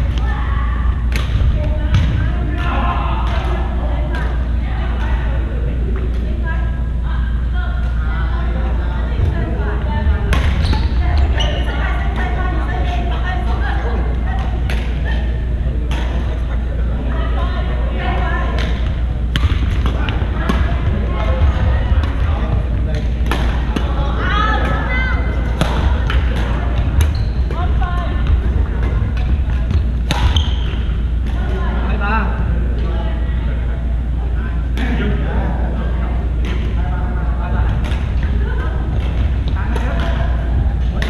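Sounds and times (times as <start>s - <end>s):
background chatter of voices: 0.0s - 41.0s
low hum: 0.0s - 41.0s
racket smacking shuttlecock: 28.8s - 30.8s.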